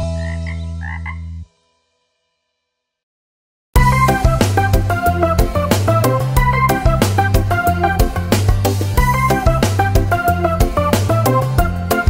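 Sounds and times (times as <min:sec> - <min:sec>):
cartoon frog croaks: 0:00.0 - 0:01.4.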